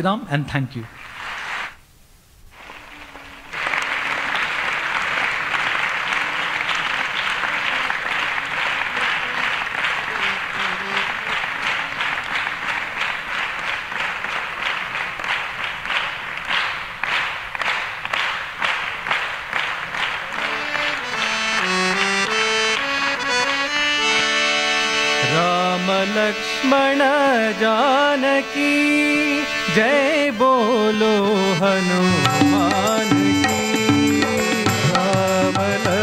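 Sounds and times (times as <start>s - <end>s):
audience applause: 2.6s - 23.5s
harmonium melody: 3.9s - 13.3s, 20.2s - 36.0s.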